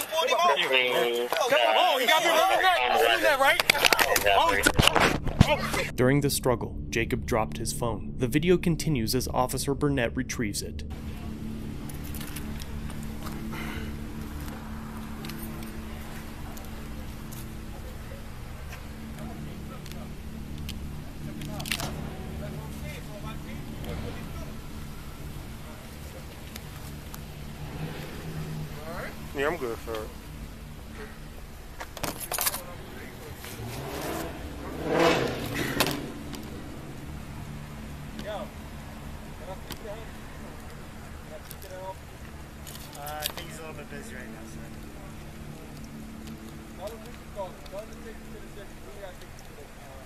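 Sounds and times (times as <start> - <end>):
idling vehicles humming: 10.6 - 50.0
car driving past: 10.8 - 41.4.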